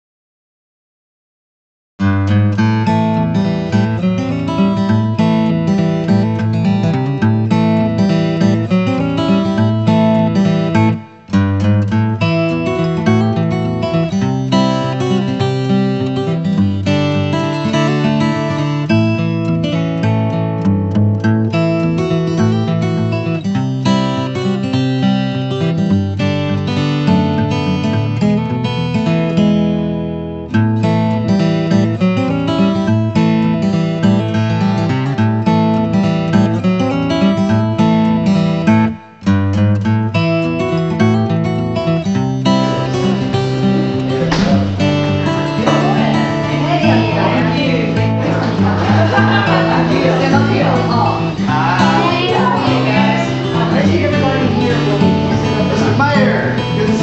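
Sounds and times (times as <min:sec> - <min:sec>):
strummed acoustic guitar music: 0:02.0 - 0:57.0.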